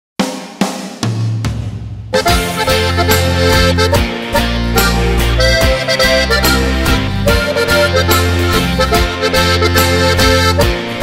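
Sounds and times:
steady drum beat: 0.2 - 11.0
accordion melody: 2.2 - 11.0
held bass notes: 2.2 - 11.0.

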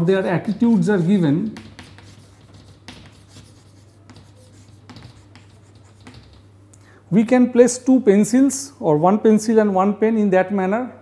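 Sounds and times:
chalk scratching on chalkboard: 0.0 - 6.5.

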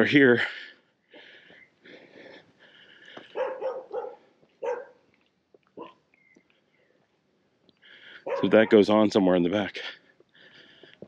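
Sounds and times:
dog barking: 3.3 - 5.0, 5.8 - 6.0, 8.2 - 8.8.

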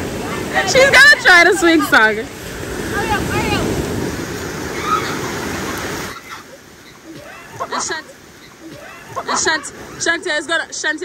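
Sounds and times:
wind buffeting microphone: 0.0 - 6.1
surf washing onto beach: 0.0 - 11.0.

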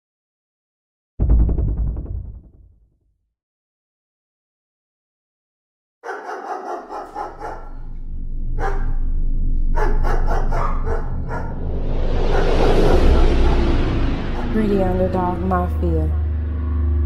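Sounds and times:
dog barks: 6.0 - 8.0, 8.6 - 9.1, 9.7 - 11.6
deep drone: 6.8 - 17.0
loud rush of noise: 10.5 - 17.0.

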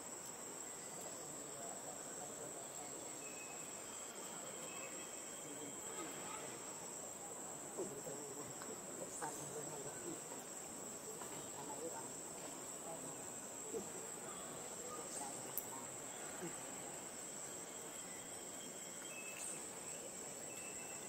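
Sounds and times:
insect drone: 0.0 - 21.0
faint squeaks and chirps: 2.6 - 6.9, 13.8 - 21.0.

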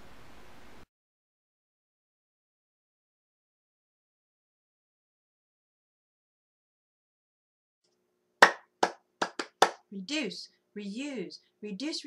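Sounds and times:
sharp hand claps: 8.4 - 9.8.

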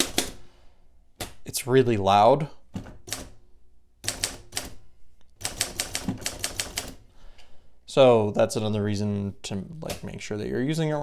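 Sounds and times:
manual typewriter keystrokes: 3.0 - 3.4, 4.0 - 4.8, 5.4 - 7.0.

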